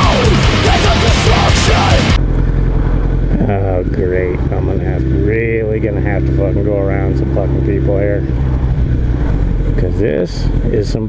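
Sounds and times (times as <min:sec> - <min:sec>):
loud rock music: 0:00.0 - 0:02.2
motorcycle engine rumble: 0:00.0 - 0:11.0
wind on microphone: 0:02.2 - 0:11.0.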